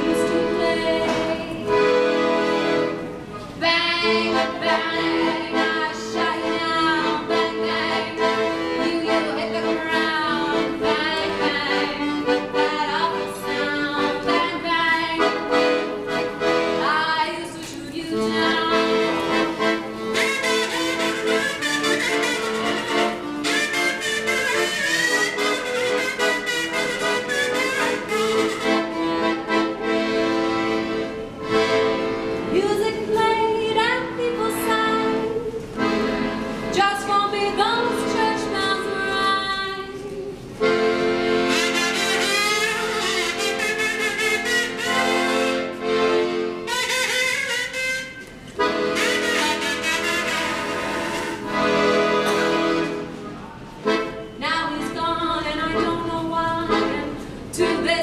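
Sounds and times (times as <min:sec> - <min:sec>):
woman singing: 0:00.0 - 0:01.9, 0:03.6 - 0:15.5, 0:16.8 - 0:19.1, 0:32.5 - 0:35.6, 0:36.7 - 0:40.4, 0:54.4 - 0:58.0
piano accordion playing: 0:00.0 - 0:58.0.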